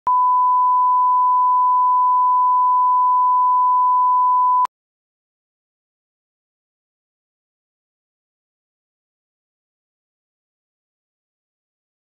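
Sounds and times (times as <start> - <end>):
sine test tone: 0.1 - 4.7.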